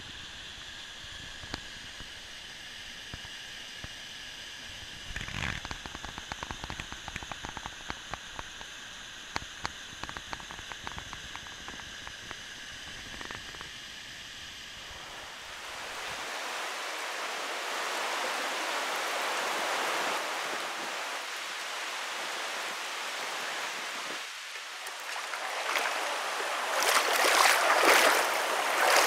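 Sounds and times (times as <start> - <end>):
creek water running over rocks: 14.8 - 29.0.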